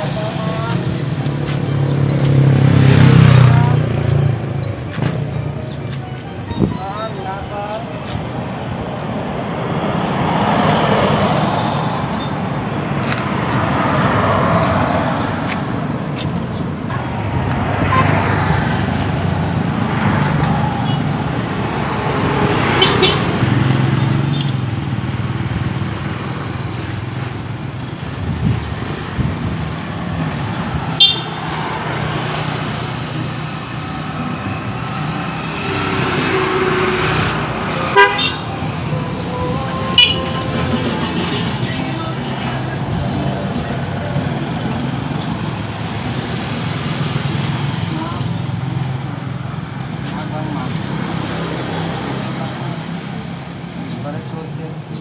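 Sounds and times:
road traffic passing: 0.0 - 55.0.

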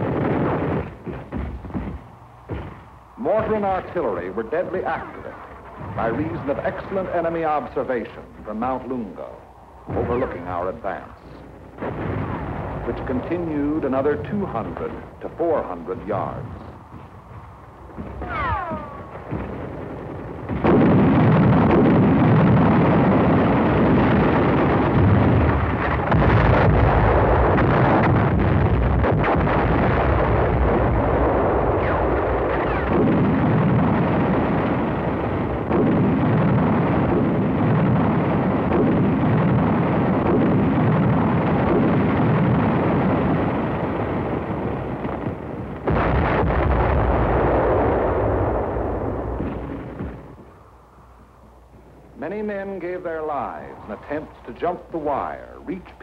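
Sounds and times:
gunfire: 0.0 - 3.8, 11.7 - 50.6.

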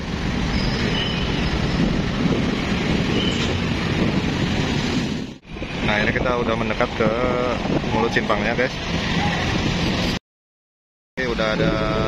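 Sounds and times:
truck engine rumble: 0.0 - 10.2.

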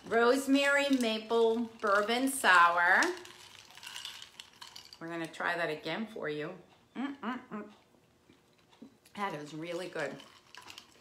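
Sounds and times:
straw swishing ice: 0.0 - 5.0, 9.9 - 11.0
ice clinking in glass: 3.0 - 5.0.

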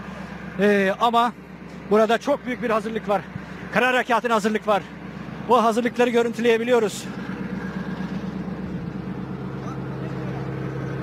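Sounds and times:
heavy tank engine idling: 0.0 - 11.0.

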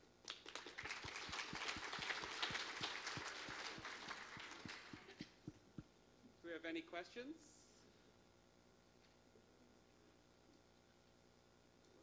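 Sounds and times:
audience applauding: 0.3 - 5.2.

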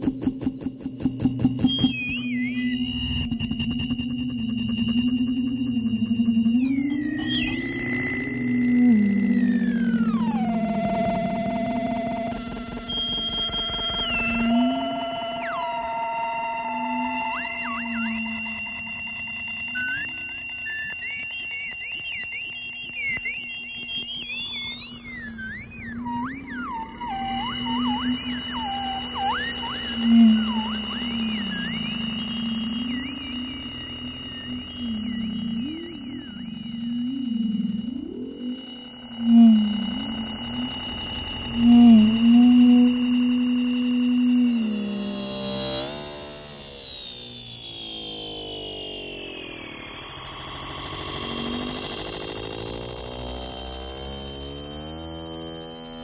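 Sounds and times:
feedback whistling tones: 0.0 - 56.0
low wavering hum: 0.0 - 56.0.

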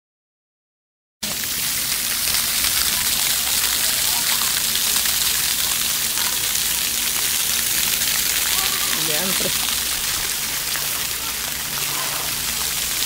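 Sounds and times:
water jets splashing on concrete: 1.2 - 13.0.

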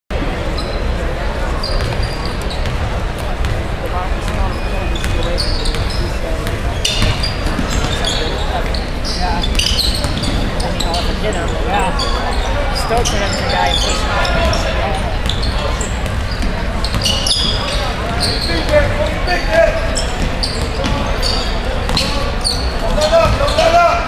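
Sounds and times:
crowd chatter: 0.1 - 24.0.

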